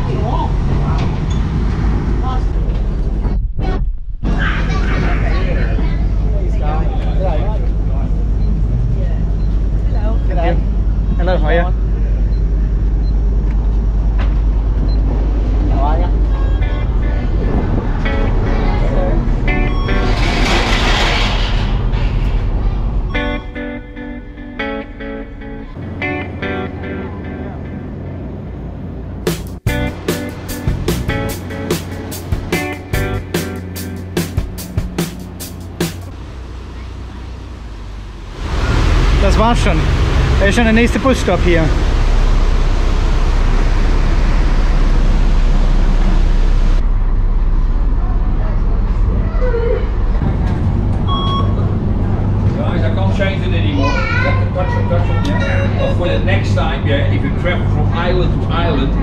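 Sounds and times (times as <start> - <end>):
boat engine rumble: 0.0 - 59.0
indistinct voices: 3.6 - 13.2, 15.0 - 23.7, 47.6 - 59.0
music with plucked guitar beat: 23.2 - 27.8, 29.3 - 36.0.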